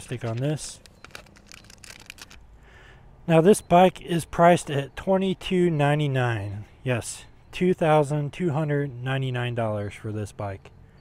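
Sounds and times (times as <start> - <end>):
plastic film crinkling: 0.0 - 2.5.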